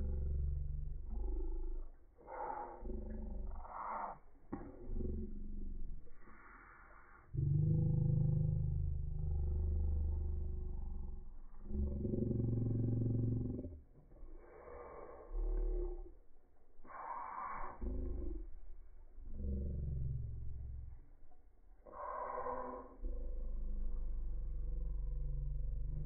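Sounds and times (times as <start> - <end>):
deep drawn-out rumbling: 0.0 - 26.0.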